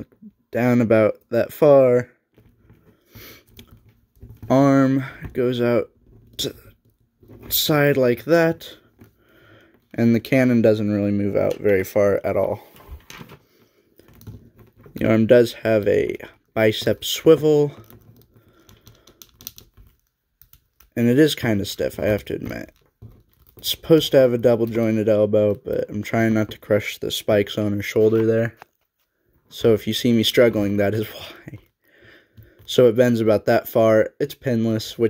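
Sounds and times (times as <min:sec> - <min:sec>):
plastic toy clicks and creaks: 0:17.7 - 0:21.0.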